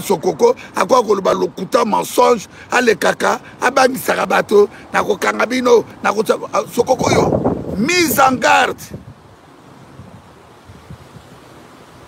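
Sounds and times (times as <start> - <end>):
wind rumbling on microphone: 3.8 - 12.0.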